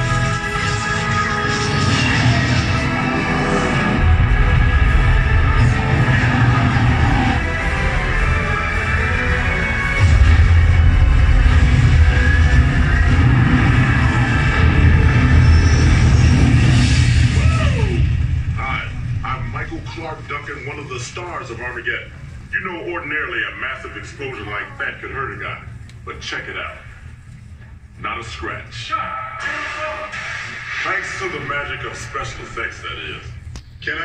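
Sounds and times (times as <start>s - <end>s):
film soundtrack music: 0.0s - 34.0s
low rumble of explosions: 9.6s - 24.1s.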